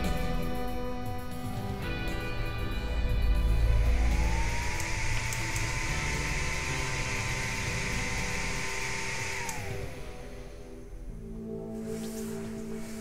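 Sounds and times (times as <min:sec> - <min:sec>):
cooling fans whirring: 0:00.0 - 0:13.0.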